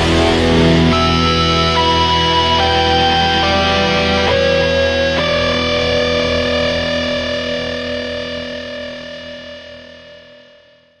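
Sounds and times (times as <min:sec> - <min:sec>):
distorted electric guitar chord: 0:00.0 - 0:10.9.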